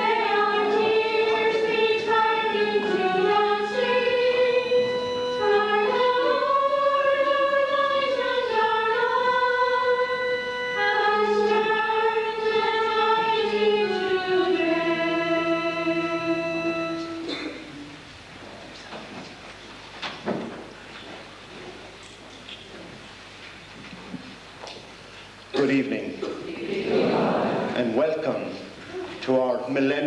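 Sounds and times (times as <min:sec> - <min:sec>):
choir singing a hymn: 0:00.0 - 0:17.5, 0:26.4 - 0:28.0
low accompanying notes: 0:00.0 - 0:18.1.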